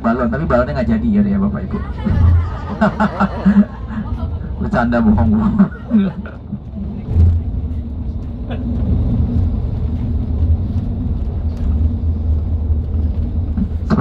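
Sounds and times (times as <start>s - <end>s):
bus engine and tyres rumbling: 0.0s - 14.0s.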